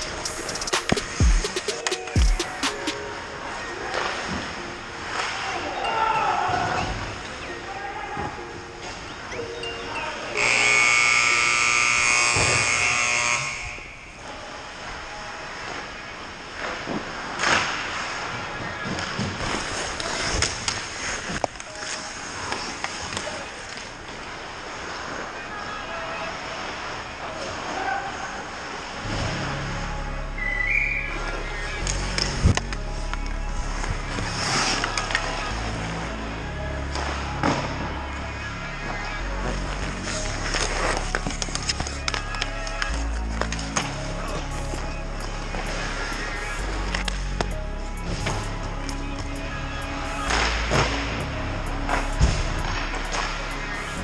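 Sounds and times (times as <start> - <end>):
music with low pulse: 0.0 - 5.6, 28.9 - 54.0
loud steady horn: 10.4 - 14.0
ice skating: 14.2 - 54.0
hockey sticks and puck clacking: 40.4 - 43.9.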